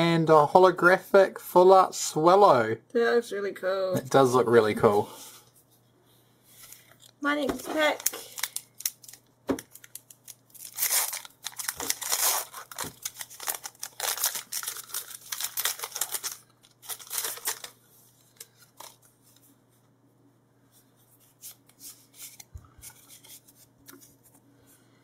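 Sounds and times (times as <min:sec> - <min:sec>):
foil wrapper being torn open: 0:08.0 - 0:17.8.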